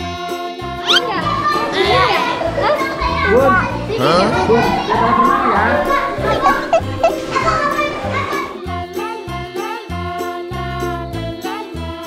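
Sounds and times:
children shouting and squealing: 0:00.8 - 0:08.6.

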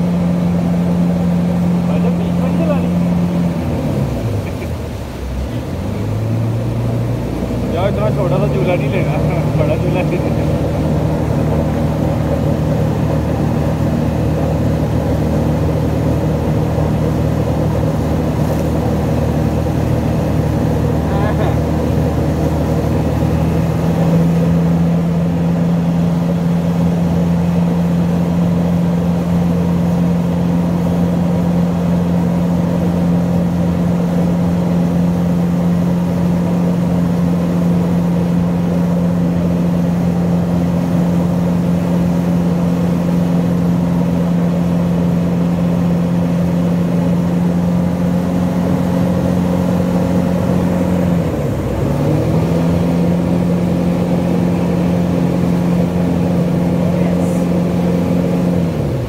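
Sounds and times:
motorboat engine running: 0:00.0 - 0:59.0.

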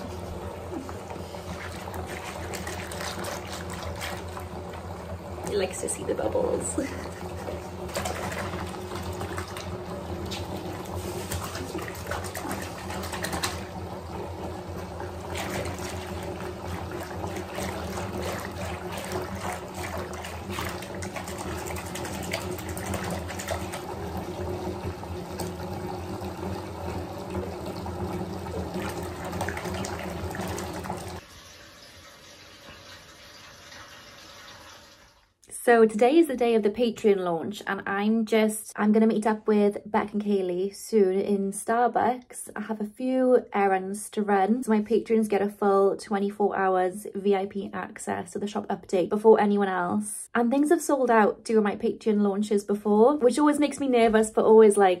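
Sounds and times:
water running into a bathtub: 0:00.0 - 0:38.1, 0:44.6 - 0:55.0.

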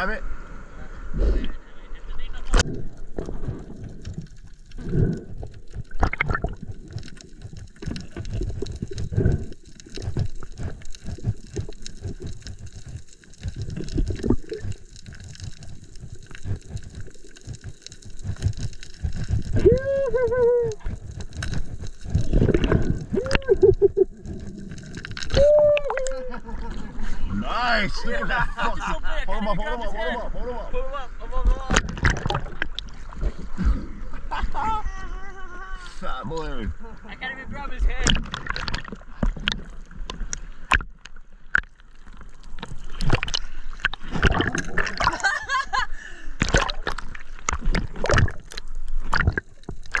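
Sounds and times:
water sloshing and gurgling: 0:02.4 - 0:28.4, 0:31.3 - 0:34.6, 0:37.5 - 0:50.0.

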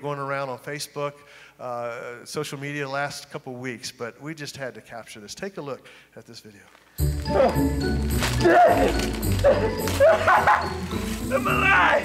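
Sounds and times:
wrapping paper crinkling and tearing: 0:06.7 - 0:12.0
music playing: 0:07.0 - 0:12.0.

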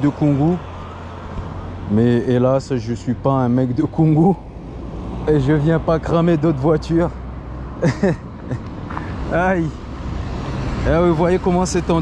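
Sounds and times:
low rumble of street traffic: 0:00.0 - 0:12.0.

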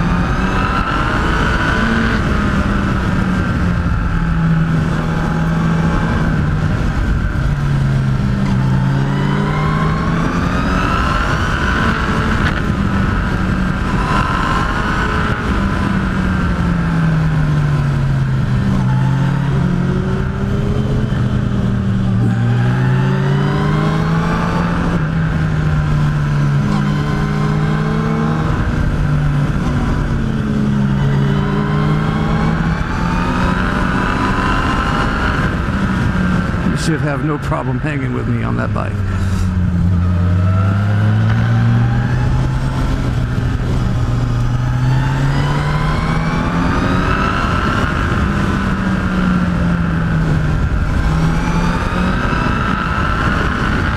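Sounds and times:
motorcycle engine revving: 0:00.0 - 0:53.9
wind rush: 0:00.0 - 0:53.9.

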